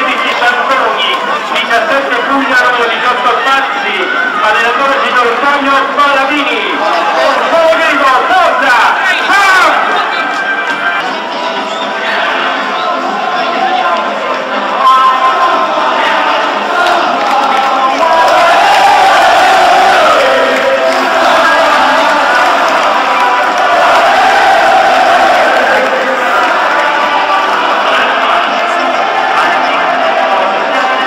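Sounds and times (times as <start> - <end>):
crowd chanting in unison: 11.1 - 31.0.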